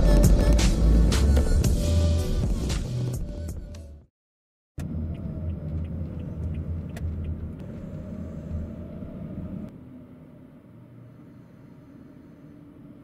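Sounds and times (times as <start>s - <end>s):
engine and road rumble in cabin: 0.0s - 3.8s, 4.8s - 13.0s.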